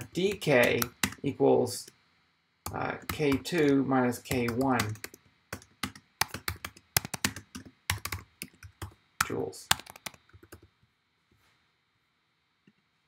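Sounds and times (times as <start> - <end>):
computer keyboard typing: 0.0 - 2.0, 2.7 - 10.7.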